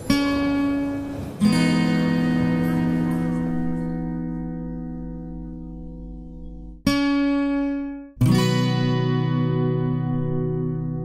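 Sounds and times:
acoustic guitar chords ringing: 0:00.0 - 0:11.0.

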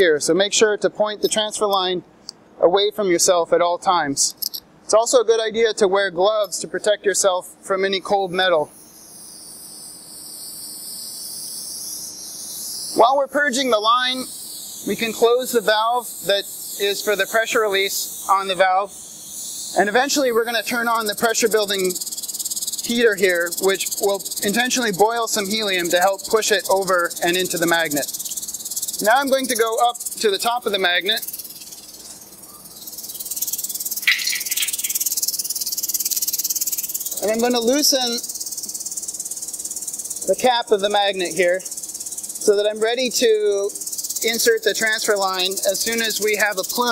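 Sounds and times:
helium gas hissing: 0:08.7 - 0:46.9.

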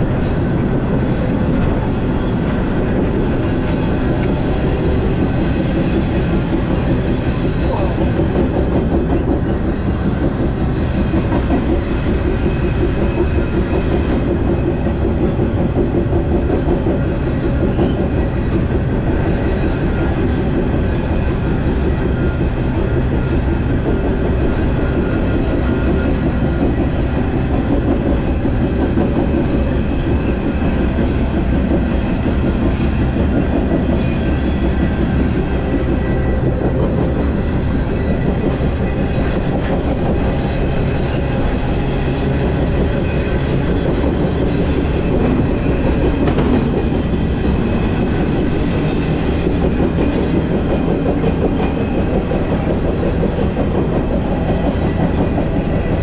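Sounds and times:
train wheels rumbling on rail: 0:00.0 - 0:56.0.

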